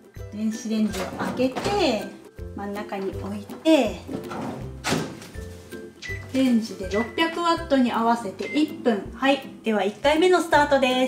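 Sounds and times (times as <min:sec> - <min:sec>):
background music: 0:00.0 - 0:11.0
microwave door thunking shut: 0:04.1 - 0:05.3.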